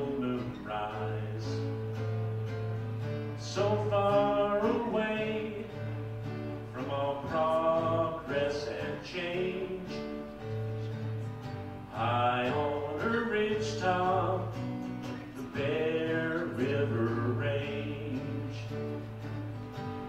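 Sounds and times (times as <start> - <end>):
man singing: 0.0 - 1.8, 3.3 - 10.8, 11.9 - 19.2
strummed acoustic guitar: 0.0 - 20.0.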